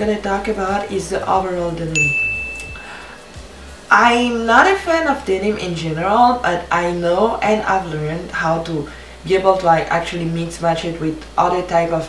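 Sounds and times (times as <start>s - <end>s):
high electronic ding: 2.0s - 2.9s.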